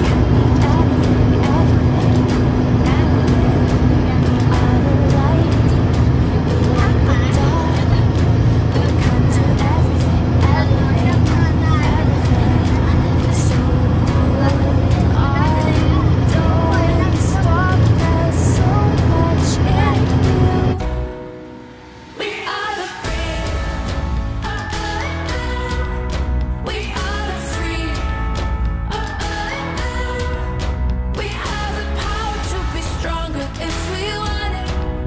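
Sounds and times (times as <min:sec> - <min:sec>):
voices: 0:00.0 - 0:21.0
road and engine rumble: 0:00.0 - 0:22.2
music: 0:00.0 - 0:35.0.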